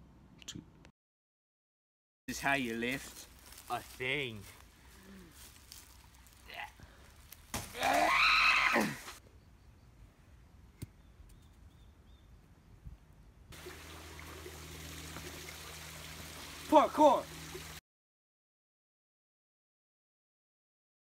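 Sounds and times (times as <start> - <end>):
man straining: 4.9 - 5.5.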